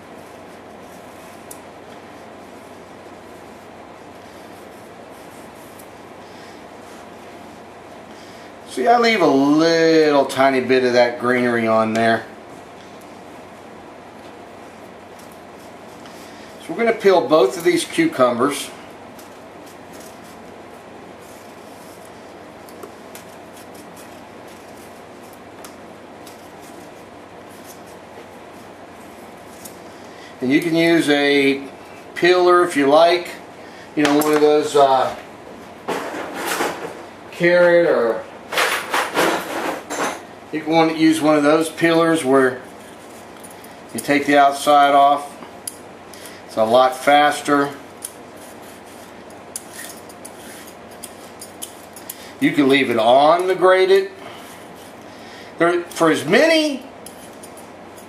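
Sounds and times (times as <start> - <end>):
background hiss and hum: 0.0 - 58.0
knife scraping cucumber peel: 48.1 - 52.2, 57.0 - 58.0.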